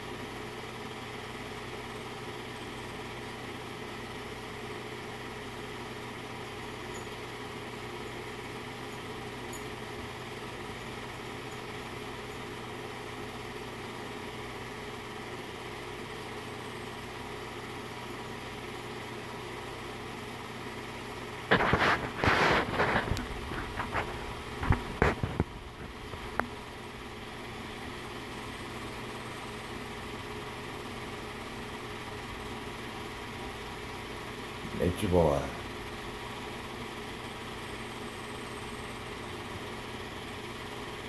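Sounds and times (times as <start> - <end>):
film projector hum: 0.0 - 41.0.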